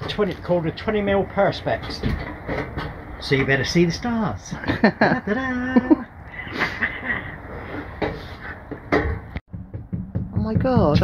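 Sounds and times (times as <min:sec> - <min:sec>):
knocks and scrapes on van roof: 0:07.5 - 0:09.4.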